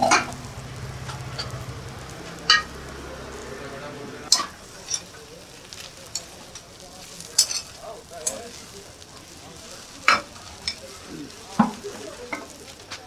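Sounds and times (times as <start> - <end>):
faint sizzle: 0.0 - 13.0
metal spatula scraping griddle: 4.3 - 12.5.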